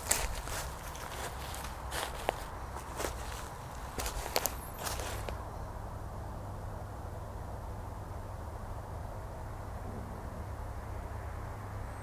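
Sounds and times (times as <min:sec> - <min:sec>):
footsteps crunching through leaves: 0:00.0 - 0:05.4.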